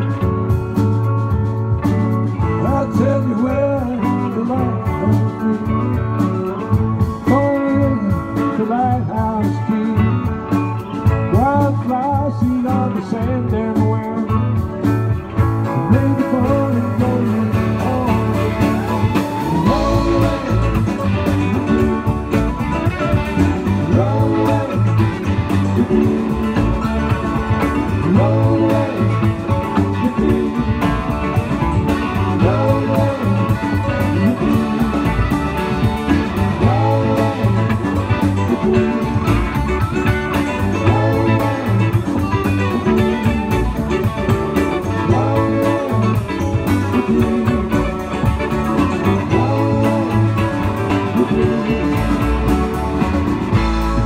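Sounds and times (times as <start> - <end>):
drums: 0.0 - 54.0
electric bass: 0.0 - 54.0
electric guitars: 0.0 - 54.0
electric keyboard: 0.0 - 54.0.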